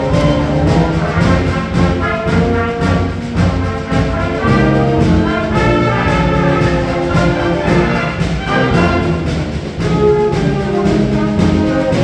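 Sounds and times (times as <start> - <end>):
concert band playing: 0.0 - 12.0.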